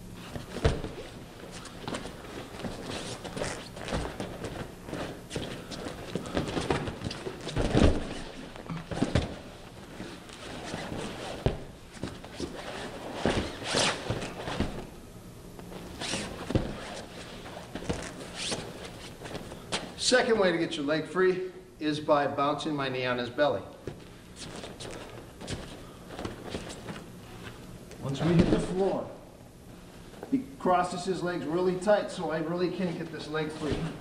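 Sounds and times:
scuffs on foam mats: 0.2 - 14.9
shuffling steps: 0.2 - 14.9, 15.6 - 20.1, 23.7 - 34.0
dull thuds on mats: 0.3 - 1.2, 1.8 - 9.5, 10.3 - 14.9, 16.4 - 17.1.

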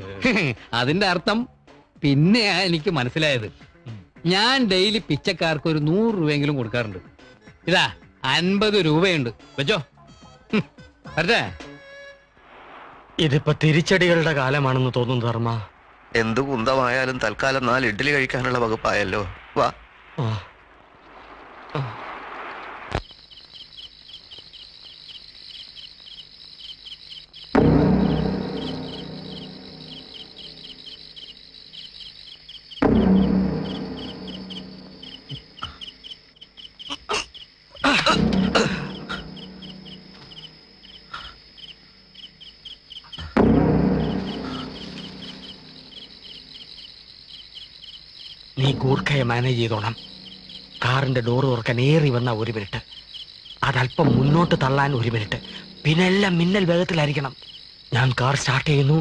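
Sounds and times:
crickets chirping: 10.5 - 59.0
low dramatic music stab: 27.6 - 31.0, 32.8 - 35.6, 38.0 - 40.8, 43.3 - 46.2.

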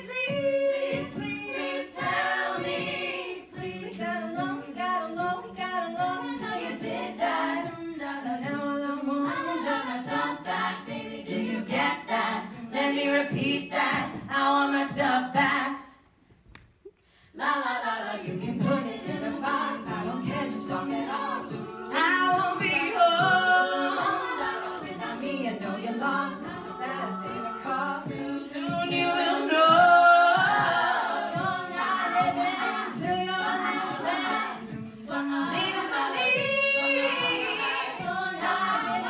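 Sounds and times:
a cappella group singing: 0.0 - 16.0, 17.3 - 39.0.

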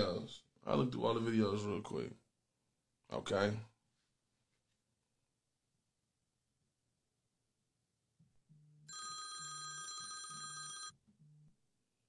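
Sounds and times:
shrill electronic phone ring: 8.9 - 11.0.

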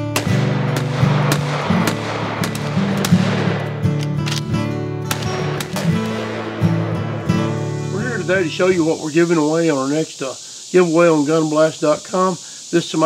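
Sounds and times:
handgun shots: 0.0 - 7.8.

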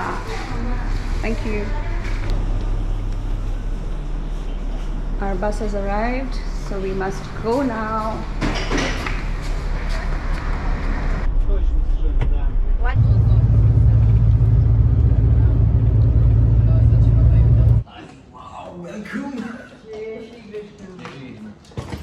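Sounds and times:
bus engine drone and road noise: 0.0 - 17.8.

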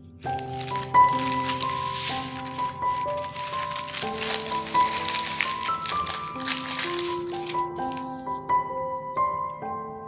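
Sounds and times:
background music with held notes: 0.0 - 10.0
baking paper crinkling: 0.2 - 8.1.

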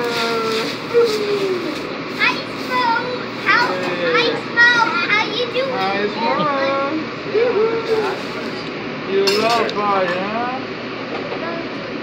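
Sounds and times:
steady background noise: 0.0 - 12.0
children's excited voices: 1.0 - 6.8.

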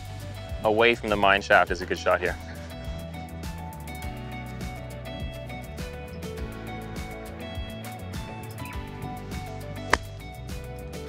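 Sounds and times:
music with steady beat: 2.4 - 11.0
golf club hitting ball from sand: 9.8 - 10.2.

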